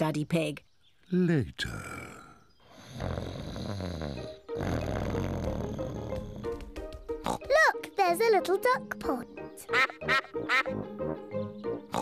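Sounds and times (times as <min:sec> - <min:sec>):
cartoon pig snoring: 0:02.7 - 0:06.5, 0:07.2 - 0:07.5.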